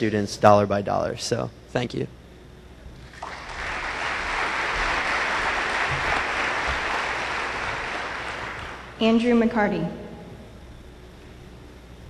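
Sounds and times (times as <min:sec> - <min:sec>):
audience applauding: 0:03.0 - 0:09.0.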